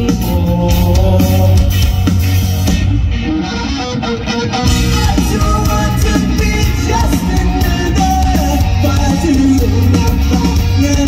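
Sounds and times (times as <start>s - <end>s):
bass guitar: 0.0s - 11.0s
drums: 0.0s - 11.0s
electric guitars: 0.0s - 11.0s.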